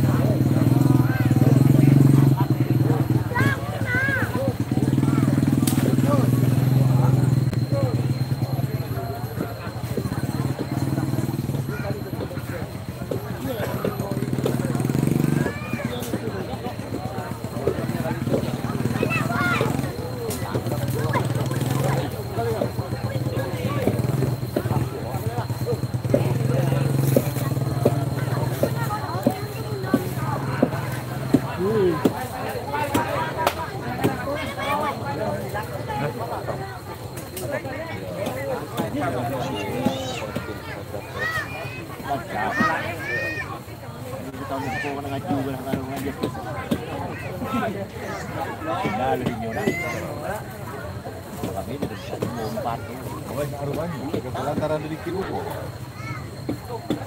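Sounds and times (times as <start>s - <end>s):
crowd chatter: 0.0s - 57.0s
small engine running: 0.0s - 57.0s.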